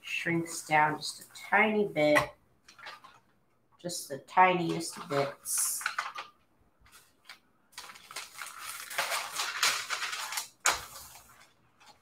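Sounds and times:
stiff paper rustling: 4.6s - 12.0s.

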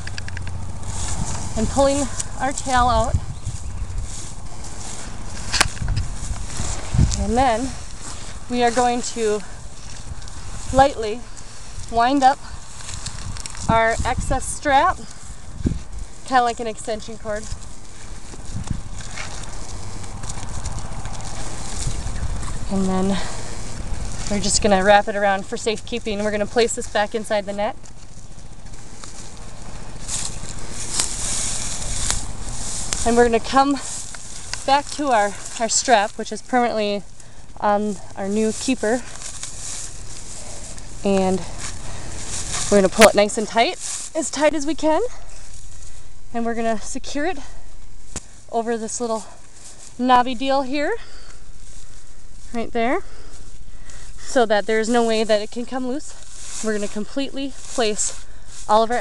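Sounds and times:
sharp clicks: 0.0s - 0.6s
hay and netting rustling: 0.0s - 59.0s
low microphone rumble: 0.0s - 59.0s.

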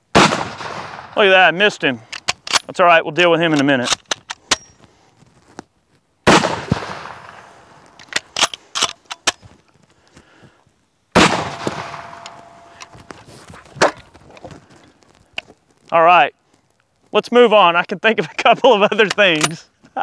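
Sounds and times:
rifle shots echoing: 0.1s - 1.4s, 6.3s - 7.9s, 11.2s - 13.1s
rifle bolt clicks: 2.1s - 2.7s, 11.6s - 12.9s.

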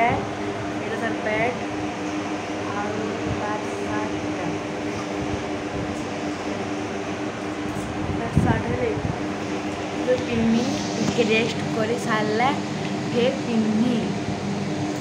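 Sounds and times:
motor hum: 0.0s - 15.0s.

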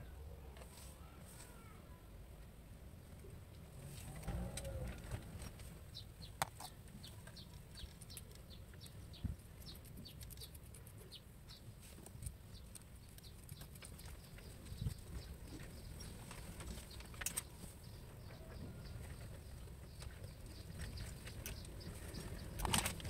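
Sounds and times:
birds chirping: 5.9s - 23.0s
small parts clicking: 6.4s - 11.0s.

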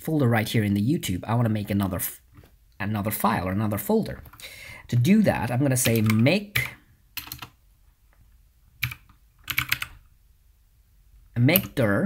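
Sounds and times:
computer keyboard typing: 5.8s - 7.6s, 8.8s - 10.0s, 11.6s - 11.8s.

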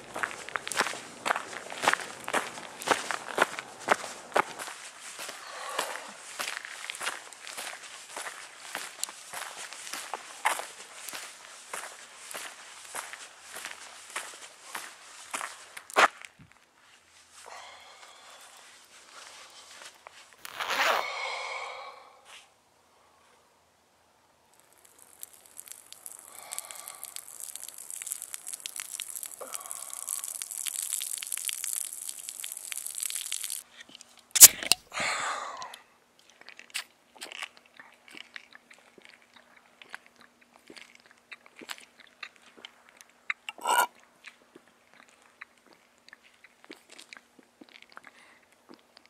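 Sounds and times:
gulps of swallowing: 5.3s - 6.3s, 26.0s - 31.1s, 43.4s - 43.9s
crackling hiss: 18.4s - 22.1s, 24.5s - 33.6s
glass bottle clink: 43.5s - 43.9s.

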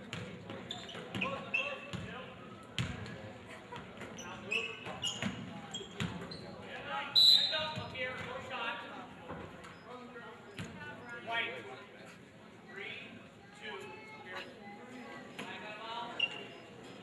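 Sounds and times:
sneaker squeaks: 0.1s - 2.2s, 3.8s - 8.4s, 9.4s - 11.2s, 14.4s - 17.0s.

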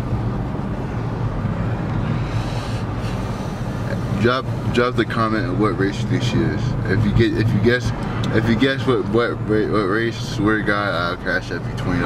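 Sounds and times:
car cabin road and engine drone: 0.0s - 12.0s.

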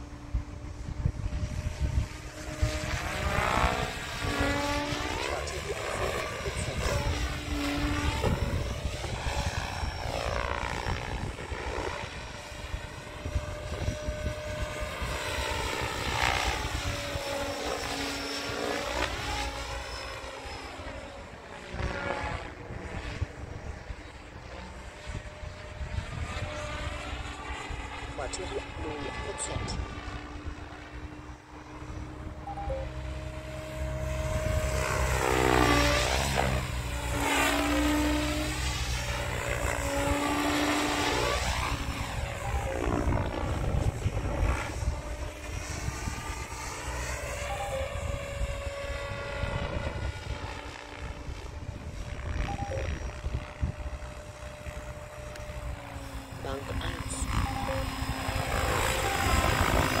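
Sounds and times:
rc helicopter rotor and motor whine: 0.0s - 60.0s.

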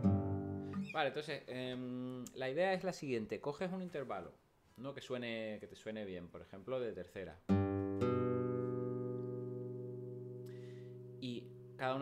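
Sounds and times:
classical guitar notes ringing: 0.0s - 1.0s, 7.5s - 12.0s.

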